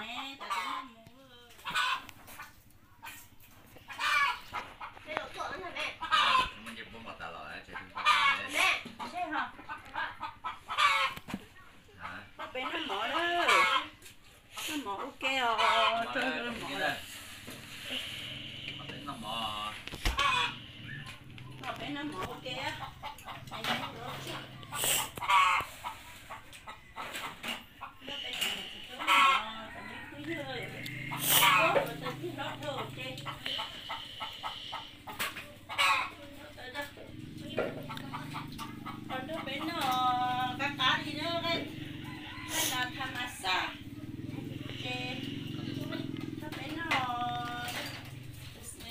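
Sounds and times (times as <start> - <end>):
chickens clucking: 0.0 - 48.9.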